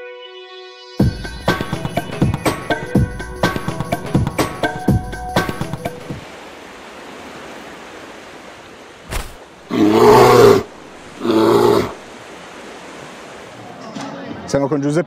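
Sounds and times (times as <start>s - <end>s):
drawn-out voice-like cries: 9.7s - 12.1s.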